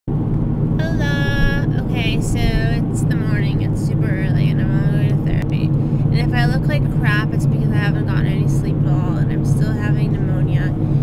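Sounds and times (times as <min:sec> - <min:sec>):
car engine and road noise: 0:00.1 - 0:11.0
woman talking: 0:00.8 - 0:11.0.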